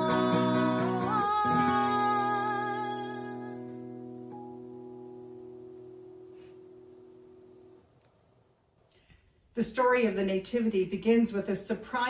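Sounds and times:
acoustic guitar chord ringing: 0:00.0 - 0:08.0.

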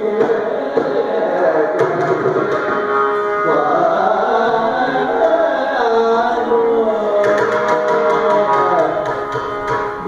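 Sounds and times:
man singing: 0:00.0 - 0:02.6, 0:03.4 - 0:09.3
violin melody: 0:02.1 - 0:07.2.

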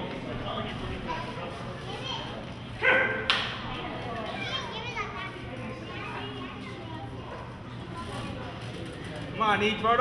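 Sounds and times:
children's voices: 0:04.2 - 0:08.4.

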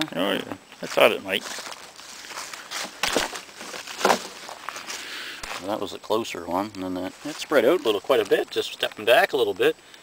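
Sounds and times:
twigs crunching and rustling: 0:00.7 - 0:09.3.

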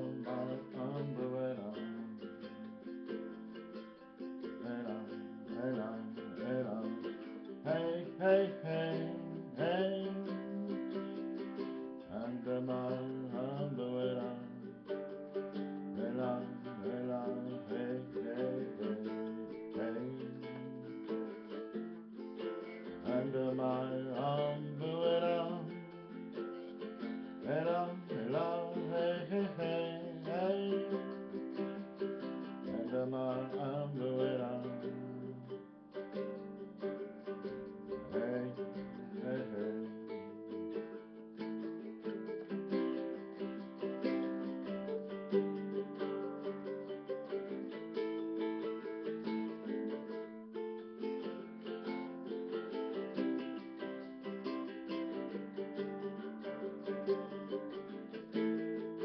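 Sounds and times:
small guitar strummed: 0:00.0 - 0:59.0.

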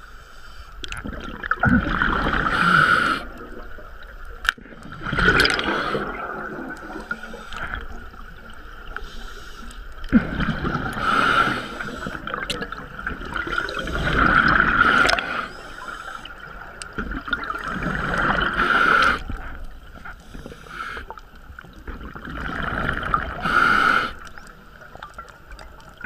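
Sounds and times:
gurgling bubbles: 0:00.8 - 0:09.2, 0:10.0 - 0:26.0
diver breathing through regulator: 0:05.4 - 0:06.3, 0:10.8 - 0:12.3, 0:17.9 - 0:21.2, 0:23.3 - 0:24.4.

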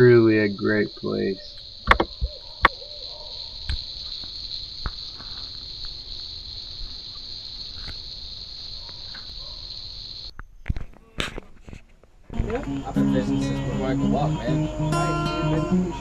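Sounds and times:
insects chirping at night: 0:00.0 - 0:10.8, 0:12.3 - 0:16.0
sharp knocks: 0:01.8 - 0:02.8.

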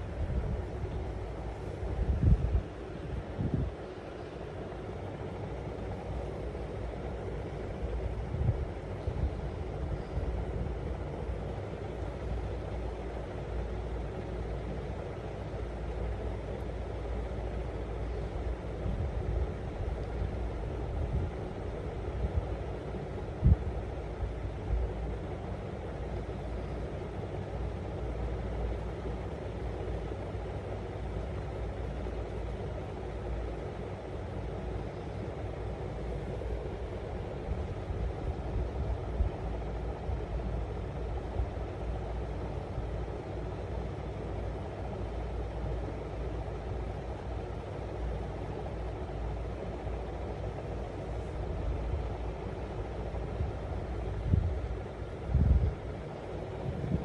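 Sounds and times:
low rumbling background noise: 0:00.0 - 0:57.0.

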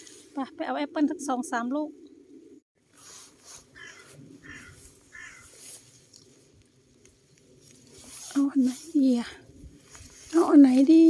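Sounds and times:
distant bird calls: 0:03.6 - 0:05.8.

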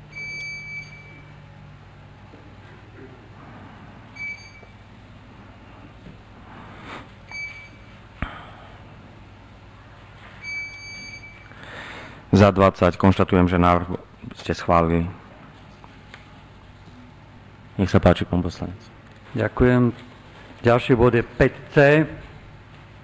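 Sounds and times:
short electronic beeps: 0:00.1 - 0:01.3, 0:04.2 - 0:04.8, 0:07.3 - 0:07.9, 0:10.4 - 0:11.5.

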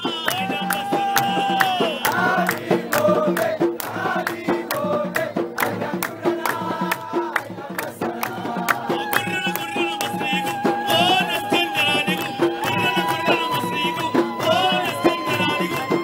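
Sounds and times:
men singing in chorus: 0:00.0 - 0:16.0
sharp hand claps: 0:00.0 - 0:16.0.

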